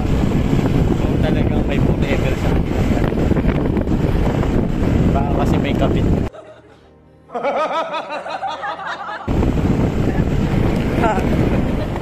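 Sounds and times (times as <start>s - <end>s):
motorcycle engine: 0.0s - 6.3s, 9.3s - 12.0s
wind rumble on microphone: 0.0s - 6.3s, 9.3s - 12.0s.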